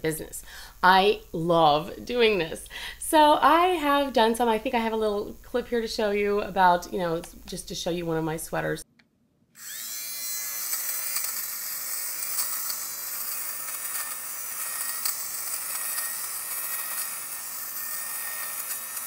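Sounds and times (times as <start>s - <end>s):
blades shaving pills off sweater: 9.6s - 19.0s
fabric shaver motor whine: 9.6s - 19.0s.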